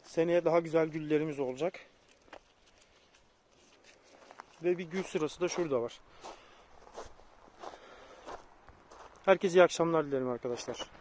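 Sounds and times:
footsteps on gravel: 0:00.5 - 0:09.6.

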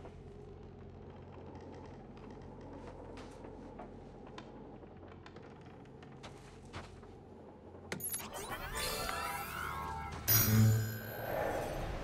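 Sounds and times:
electronic sweeps and tones: 0:08.0 - 0:12.0.

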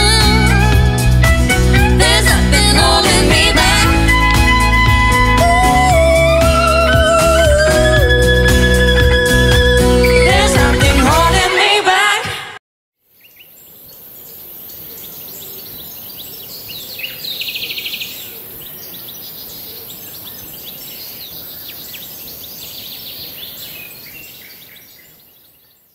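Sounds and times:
birds chirping and singing: 0:13.2 - 0:25.9.

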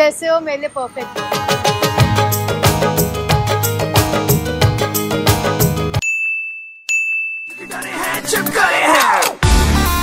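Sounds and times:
music: 0:01.0 - 0:06.0, 0:07.6 - 0:10.0
high-pitched bell dings: 0:06.0 - 0:07.8.

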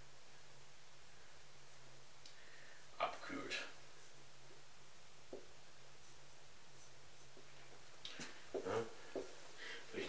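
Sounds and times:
low steady hum: 0:00.0 - 0:10.0
marker scratching on whiteboard: 0:05.3 - 0:07.7.

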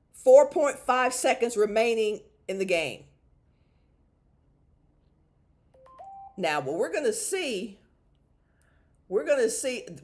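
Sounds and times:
electronic beep tones: 0:05.8 - 0:06.4.

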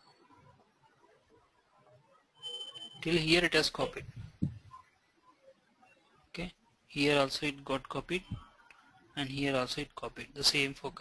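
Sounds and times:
high-pitched electronic beep: 0:02.3 - 0:03.2.

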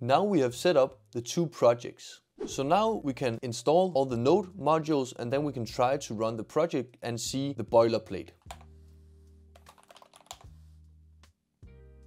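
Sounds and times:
computer keyboard typing: 0:08.4 - 0:08.7, 0:09.6 - 0:10.5.

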